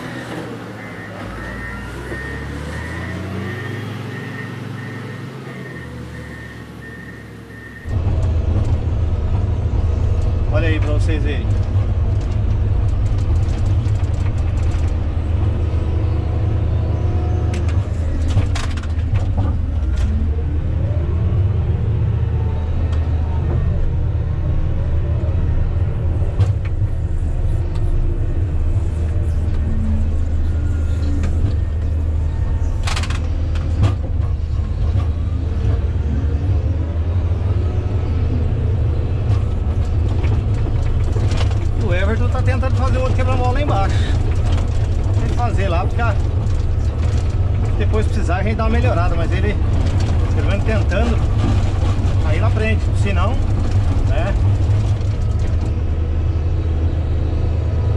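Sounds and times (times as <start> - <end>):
diesel engine droning: 0.0 - 57.9.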